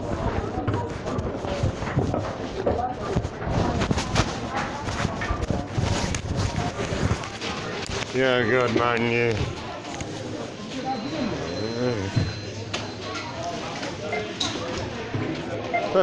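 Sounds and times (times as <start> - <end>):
indistinct voices: 6.5 - 16.0.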